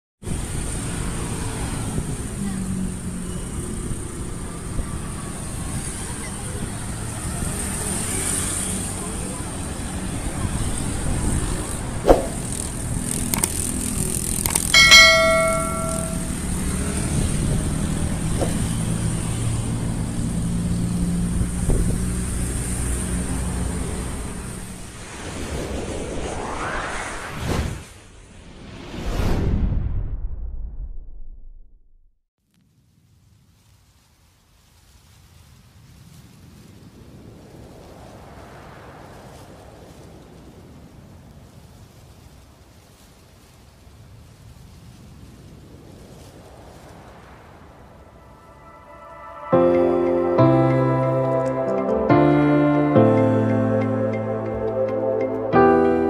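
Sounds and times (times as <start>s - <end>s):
road traffic: 0.2s - 27.5s, 46.0s - 56.0s
bright bell ding: 14.7s - 16.6s.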